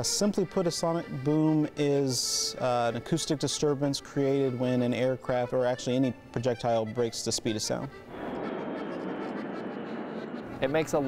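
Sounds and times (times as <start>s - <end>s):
jet aircraft rushing overhead: 8.1s - 11.0s.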